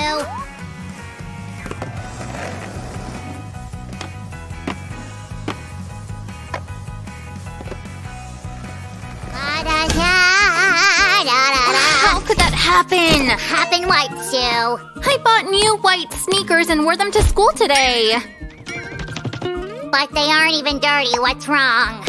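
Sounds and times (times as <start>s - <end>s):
background music: 0.0s - 22.0s
skateboard wheels rolling on asphalt: 1.2s - 10.0s.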